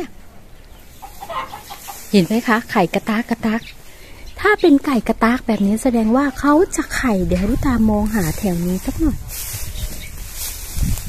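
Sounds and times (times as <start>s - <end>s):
hen clucking: 0.4s - 4.8s.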